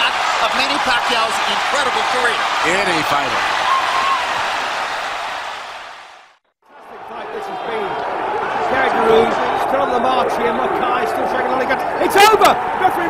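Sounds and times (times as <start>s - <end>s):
arena crowd shouting: 0.0s - 13.0s.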